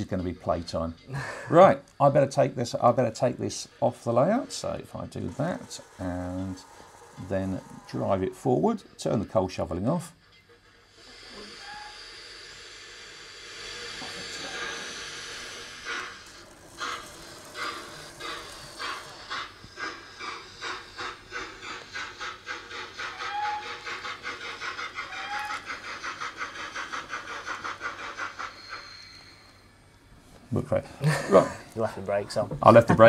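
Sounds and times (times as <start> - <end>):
steam hiss: 0.0 - 32.8
steam locomotive exhaust chuffs: 0.0 - 33.0
brief squeaks: 28.4 - 29.7.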